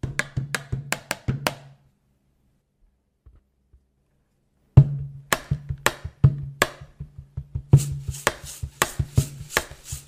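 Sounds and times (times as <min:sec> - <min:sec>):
hand claps and taps: 0:00.0 - 0:01.7, 0:05.3 - 0:09.8.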